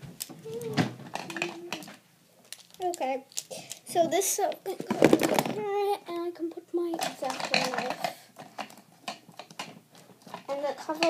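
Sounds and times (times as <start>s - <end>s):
small objects clicking and tapping: 0.2s - 4.2s, 4.8s - 5.6s, 6.9s - 11.0s.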